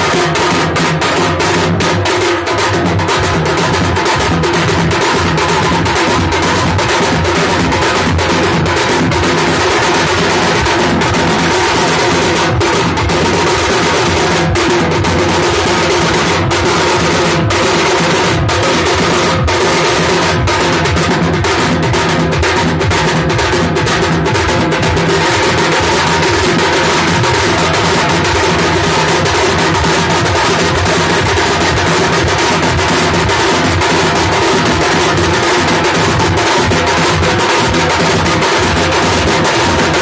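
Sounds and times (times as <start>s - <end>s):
drum ensemble playing: 0.0s - 40.0s.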